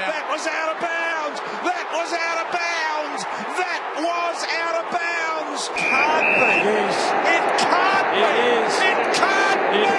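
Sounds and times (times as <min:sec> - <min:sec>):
crowd din: 0:00.0 - 0:09.9
people shouting and whooping: 0:00.0 - 0:09.9.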